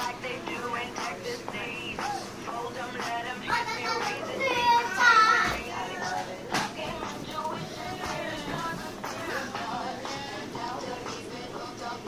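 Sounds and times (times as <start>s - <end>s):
child's high-pitched voice: 3.5s - 5.6s.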